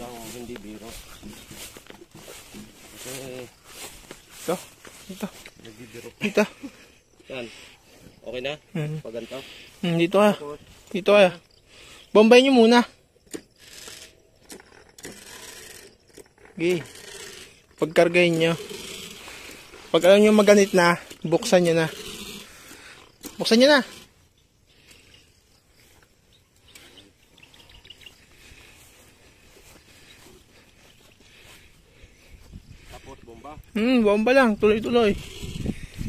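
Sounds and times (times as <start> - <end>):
soft rustles: 0.0 - 6.1
sprayer hand pump strokes: 0.0 - 6.1, 13.6 - 25.2.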